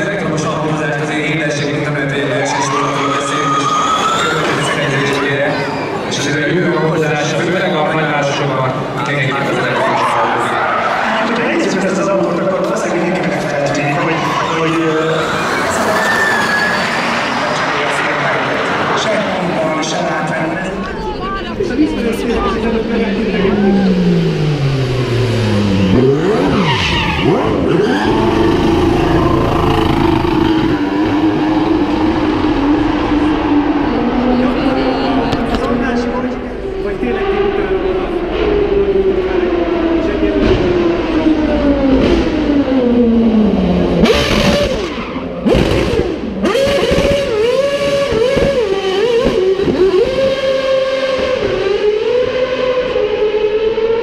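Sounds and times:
racing car engine revving: 0:15.0 - 0:54.0.

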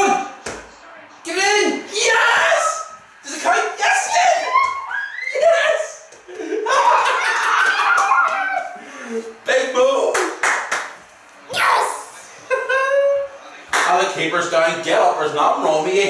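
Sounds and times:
man and boy shouting and cheering: 0:01.3 - 0:06.1, 0:07.1 - 0:08.8, 0:11.5 - 0:12.2
handclaps: 0:07.4 - 0:08.5, 0:10.1 - 0:11.0, 0:13.7 - 0:14.0.

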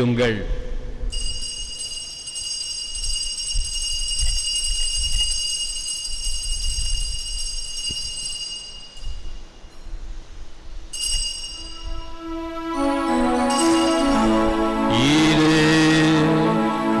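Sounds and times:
altar bell ringing: 0:01.1 - 0:15.5.

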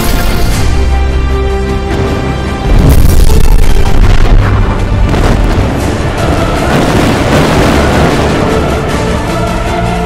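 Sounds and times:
trailer music: 0:00.0 - 0:10.0
explosions and booms: 0:01.9 - 0:09.3.

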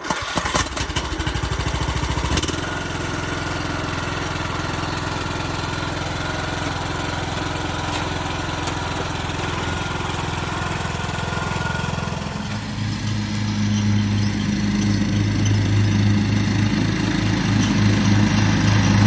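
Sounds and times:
lawn mower engine starting: 0:00.0 - 0:19.0.

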